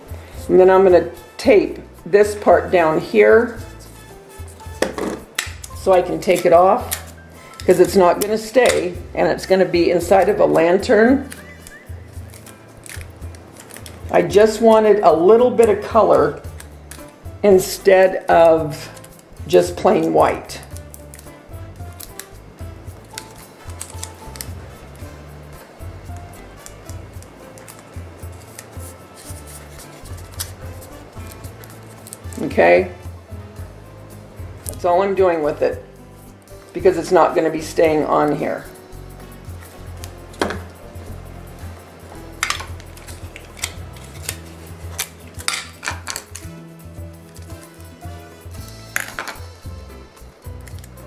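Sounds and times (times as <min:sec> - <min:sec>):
background music with bass line: 0:00.0 - 0:51.0
items clicking on tile countertop: 0:40.4 - 0:40.7, 0:42.4 - 0:46.5, 0:48.9 - 0:49.4.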